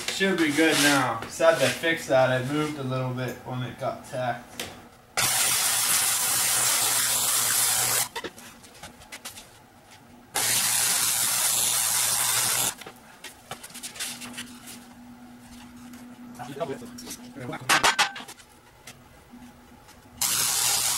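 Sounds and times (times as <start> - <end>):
arc welder hissing: 5.2 - 8.2, 10.4 - 12.8, 20.2 - 20.9.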